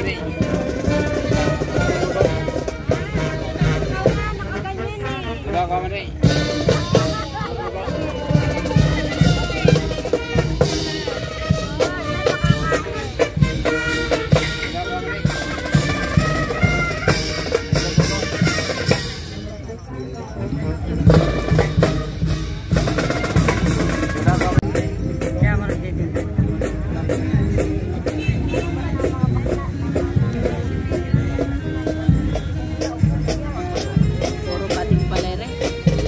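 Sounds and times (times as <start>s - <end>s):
brass melody: 0.0s - 25.4s, 26.4s - 36.0s
marching drum beats and rolls: 0.0s - 36.0s.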